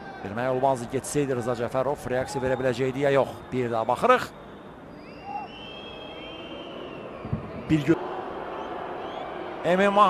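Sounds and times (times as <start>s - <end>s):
stadium crowd noise: 0.0s - 10.0s
whistles from the crowd: 2.2s - 9.6s.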